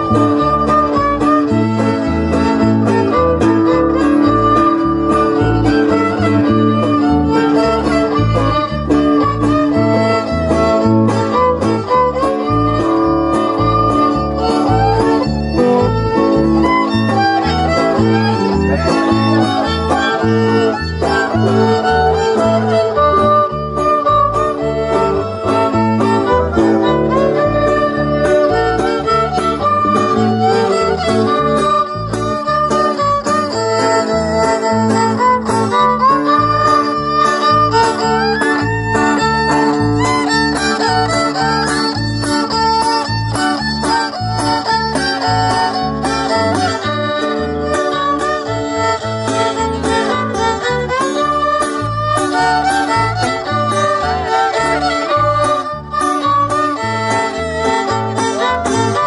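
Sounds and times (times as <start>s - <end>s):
fiddle melody: 0.0s - 59.0s
guitar: 0.0s - 59.0s.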